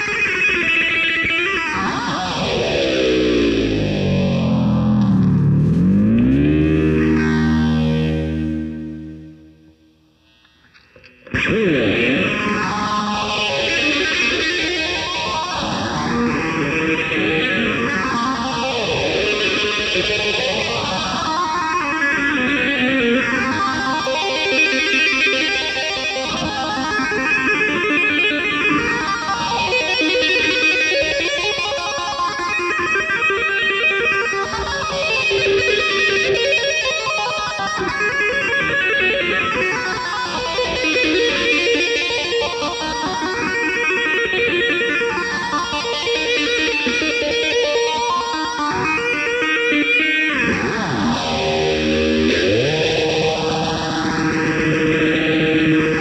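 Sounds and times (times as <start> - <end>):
fast electric guitar solo: 0.0 - 56.0.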